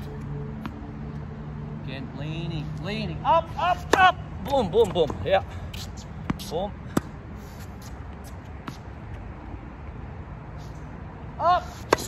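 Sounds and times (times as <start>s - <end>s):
tennis ball bouncing on court: 3.8s - 7.2s.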